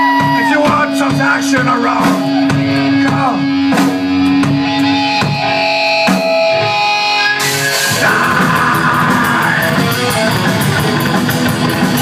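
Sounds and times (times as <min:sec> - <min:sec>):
electric guitars: 0:00.0 - 0:12.0
drum hits: 0:00.1 - 0:06.6.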